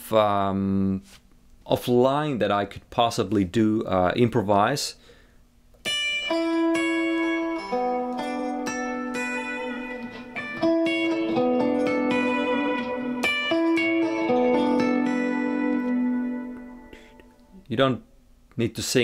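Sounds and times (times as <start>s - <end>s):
electric guitar playing: 5.8s - 17.5s.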